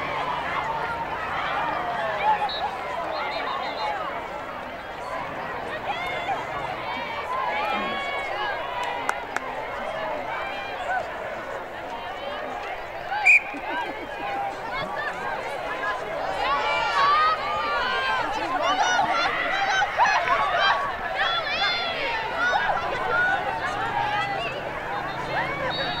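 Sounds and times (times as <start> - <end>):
people calling and shouting: 0.0 - 26.0.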